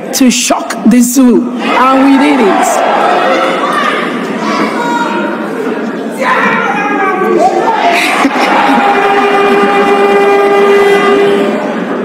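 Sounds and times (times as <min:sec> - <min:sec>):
crowd noise in a hall: 0:00.0 - 0:12.0
horn blown in a held tone: 0:08.6 - 0:11.9.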